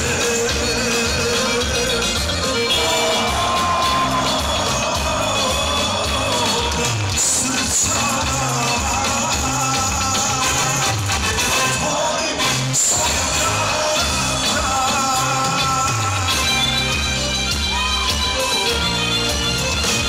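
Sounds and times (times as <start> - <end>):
man singing into a microphone: 0.0 - 16.9
live pop-folk band music: 0.0 - 20.0
repeating bass line: 0.0 - 20.0.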